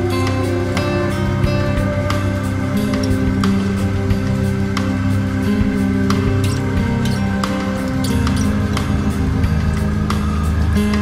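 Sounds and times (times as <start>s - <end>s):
bass line: 0.0s - 11.0s
electric guitar notes: 0.0s - 11.0s.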